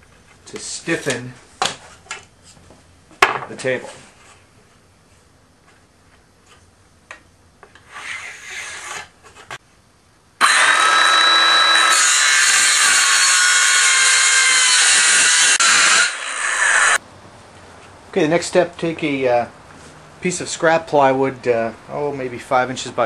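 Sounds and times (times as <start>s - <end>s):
circular saw cutting plywood: 7.8s - 9.1s, 10.4s - 17.0s.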